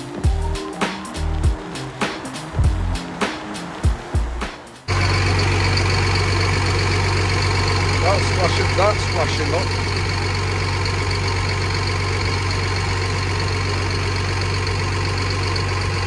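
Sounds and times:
music with drum beat: 0.0 - 4.9
diesel engine idling: 0.0 - 16.0.

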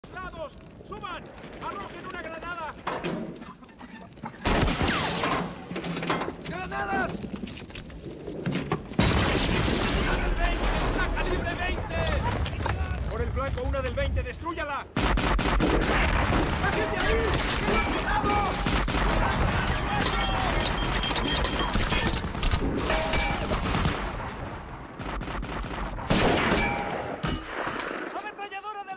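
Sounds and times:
gunfire: 4.4 - 5.6, 15.0 - 28.2
anti-aircraft cannon firing in bursts: 9.0 - 12.6, 15.0 - 28.0
small-arms fire: 25.0 - 28.2.

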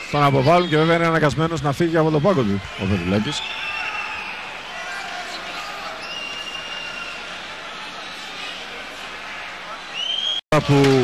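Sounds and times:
arena crowd noise: 0.0 - 11.0
high steady whistles: 6.0 - 7.4, 9.9 - 10.4.

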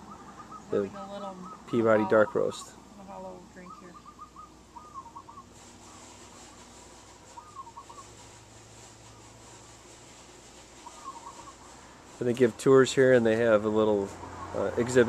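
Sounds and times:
bird trilling: 0.0 - 8.4, 10.7 - 12.0, 14.2 - 15.0.

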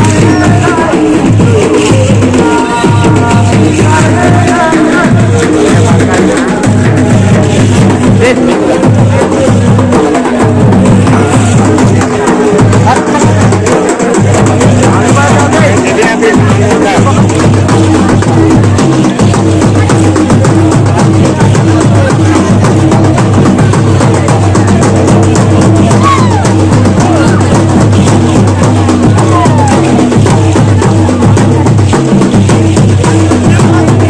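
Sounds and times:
crowd voices: 0.0 - 34.0
loud drumming and percussion: 0.0 - 34.0.

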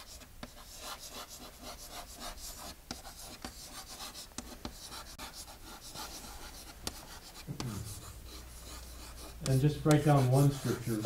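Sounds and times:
chalk scratching on blackboard: 0.0 - 11.0
chalk tapping board: 0.0 - 11.0.

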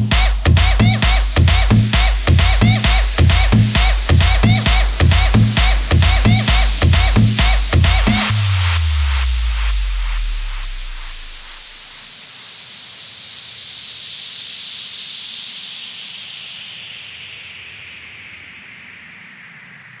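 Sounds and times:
low bass tail: 0.0 - 11.8
white-noise sweep: 0.0 - 20.0.

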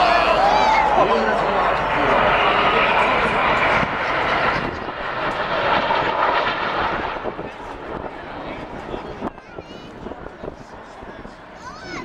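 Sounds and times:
jet aircraft roaring overhead: 0.0 - 12.0.

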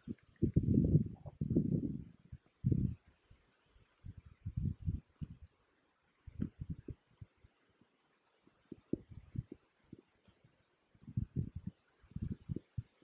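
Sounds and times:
wind buffeting microphone: 0.0 - 3.2, 3.9 - 5.5, 6.2 - 7.5, 8.6 - 13.0.

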